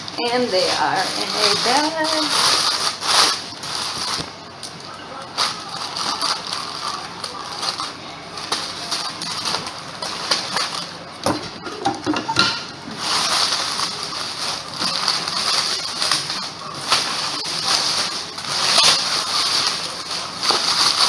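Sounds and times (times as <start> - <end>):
packing material crinkling: 0.0 - 11.6, 12.7 - 21.0.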